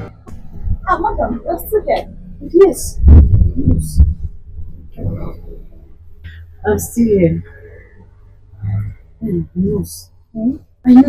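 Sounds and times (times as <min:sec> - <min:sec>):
heavy low thumps and rumbling: 0:00.0 - 0:10.8.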